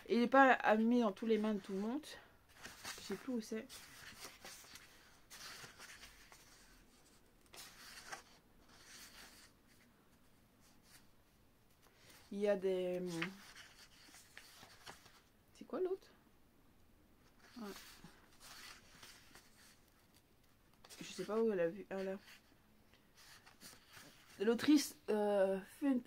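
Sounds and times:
book pages rustling: 1.2s - 15.3s, 17.2s - 24.9s.

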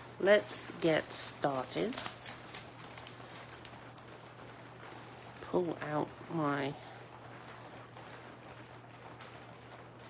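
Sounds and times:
faint low hum: 0.0s - 10.0s
paper rustling: 0.3s - 4.2s.

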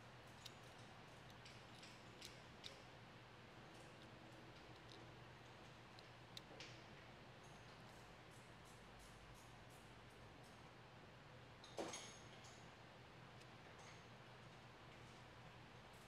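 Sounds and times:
faint plastic clicks: 3.7s - 8.0s, 13.4s - 15.2s.

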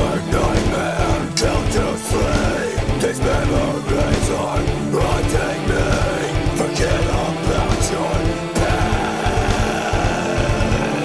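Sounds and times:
distorted electric guitars chugging: 0.0s - 11.0s
fast drum beats: 0.0s - 11.0s.

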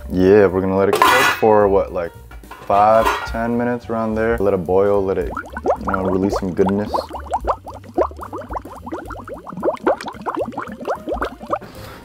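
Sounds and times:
water boiling with bubbles bursting: 5.2s - 11.8s.

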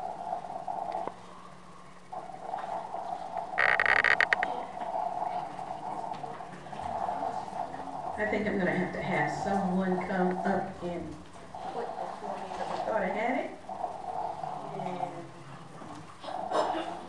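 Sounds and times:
sound system hum: 0.0s - 16.2s
microphone handling crackle: 3.6s - 4.5s.

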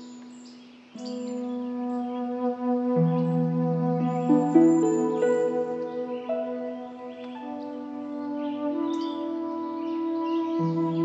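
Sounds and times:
flute holding a long note: 1.0s - 11.0s.

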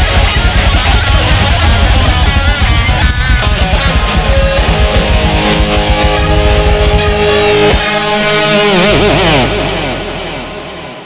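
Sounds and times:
electric guitar note sliding down: 0.0s - 11.0s
live band closing chord: 0.0s - 11.0s.

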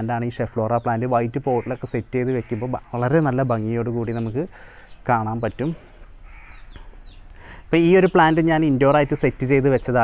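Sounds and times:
person speaking: 0.0s - 6.1s
faint bird calls: 0.4s - 10.0s.

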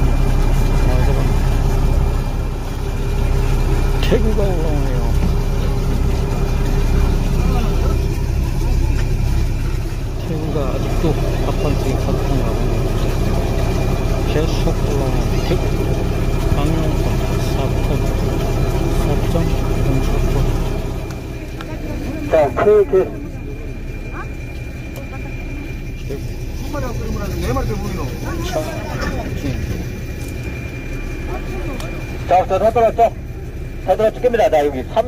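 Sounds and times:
boat engine idling: 0.0s - 35.0s.

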